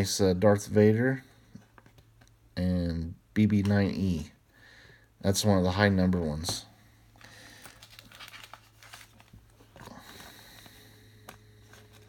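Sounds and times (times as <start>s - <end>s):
cards and plastic film crinkling: 6.4s - 12.0s.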